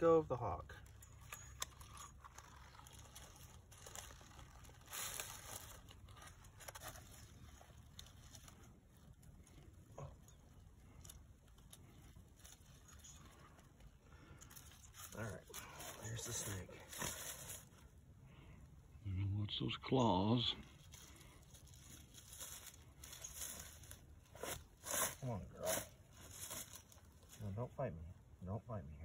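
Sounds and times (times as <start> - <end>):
rustling in dry leaves: 0.8 - 18.0, 20.5 - 27.8.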